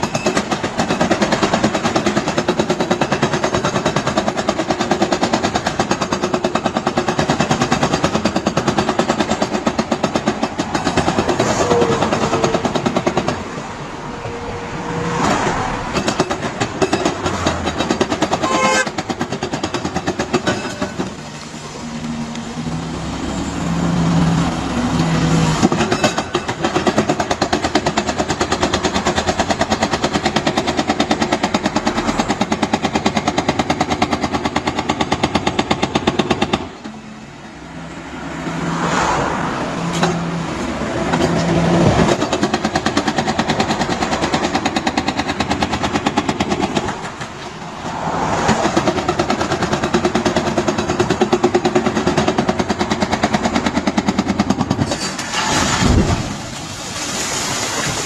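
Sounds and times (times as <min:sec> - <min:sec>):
hydraulic breaker hammer pounding stone: 0:00.0 - 0:11.4, 0:16.0 - 0:21.2, 0:25.6 - 0:36.8.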